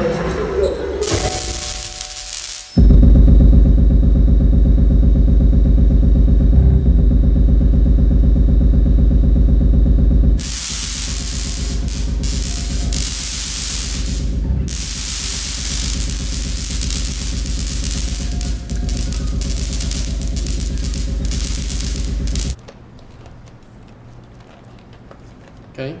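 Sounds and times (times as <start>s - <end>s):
hiss-like noise: 1.0s - 2.8s, 10.4s - 22.6s
static-like noise: 1.0s - 2.8s, 9.6s - 22.6s
deep pulsing drone: 2.8s - 22.6s.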